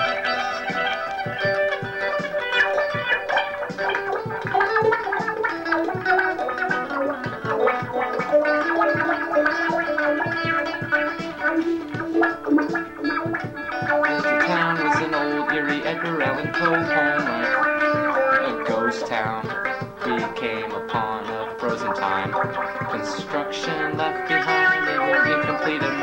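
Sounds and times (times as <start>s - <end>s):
electric guitar picked notes: 0.0s - 26.0s.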